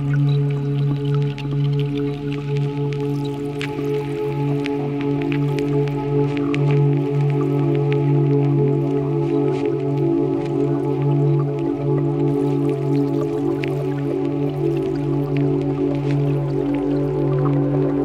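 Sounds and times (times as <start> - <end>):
low synthesizer drone: 0.0 - 18.0.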